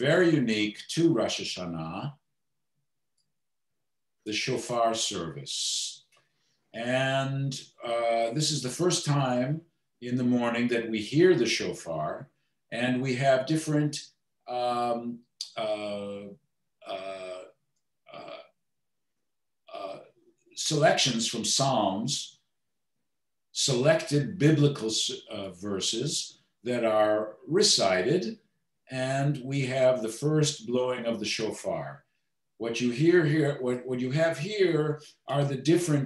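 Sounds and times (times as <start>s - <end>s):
man speaking: 0.0s - 2.2s, 4.3s - 6.0s, 6.8s - 18.6s, 19.7s - 22.4s, 23.6s - 32.0s, 32.6s - 36.0s
man saying uh: 6.8s - 12.2s, 12.8s - 17.5s, 18.1s - 18.4s, 19.7s - 20.0s, 23.6s - 28.3s.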